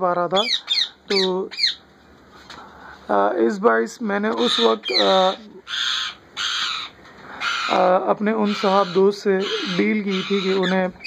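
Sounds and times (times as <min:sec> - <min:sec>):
parakeet screeching calls: 0:00.4 - 0:01.8, 0:04.3 - 0:11.0.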